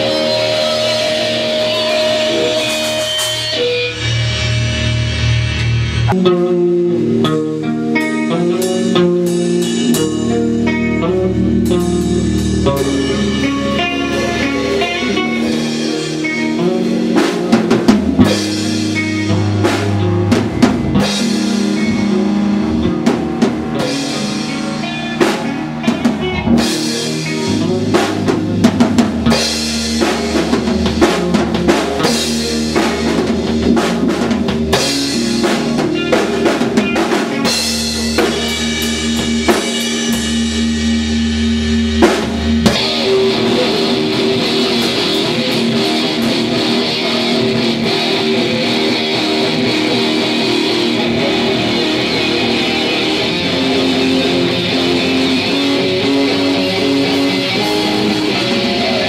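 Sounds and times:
rock band playing live: 0.0s - 59.0s.

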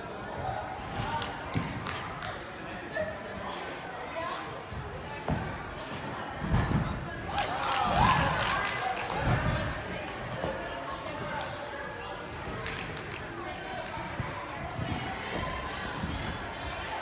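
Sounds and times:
voices in a large hall: 0.0s - 17.0s.

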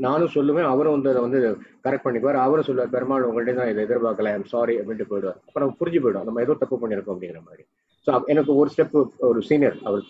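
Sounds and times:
man speaking over video call: 0.0s - 10.0s.

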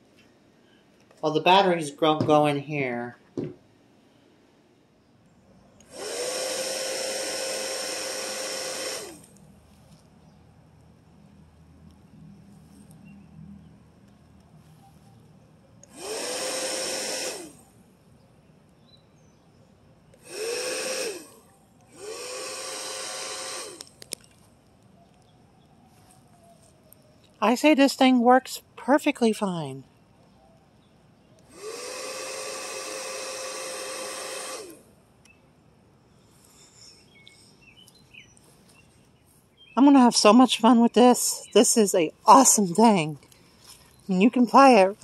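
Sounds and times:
bubble gun fan motor whirring: 5.8s - 9.5s, 15.8s - 17.8s, 20.1s - 24.4s, 31.4s - 35.0s.

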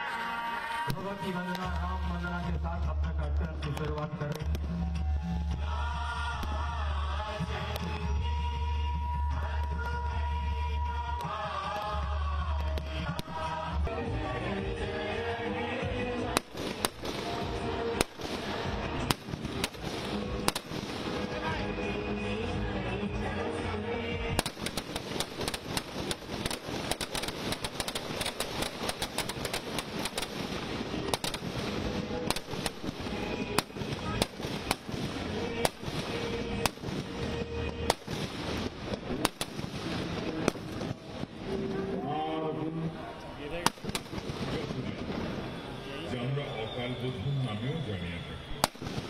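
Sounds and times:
music playing: 0.0s - 43.2s
steady crackling din: 0.0s - 49.0s
firecrackers banging: 0.9s - 13.8s, 16.2s - 22.1s, 24.2s - 42.0s, 43.6s - 45.9s, 48.6s - 49.0s.

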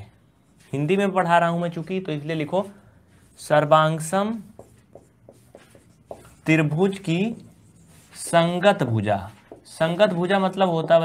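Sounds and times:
marker pen writing on whiteboard: 2.6s - 11.0s.

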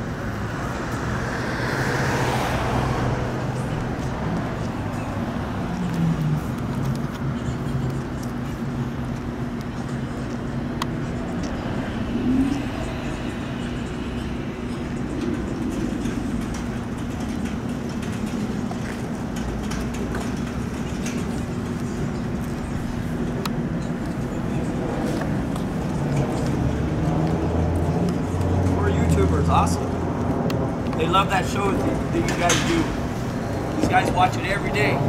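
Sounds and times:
low mechanical hum: 0.0s - 35.0s.

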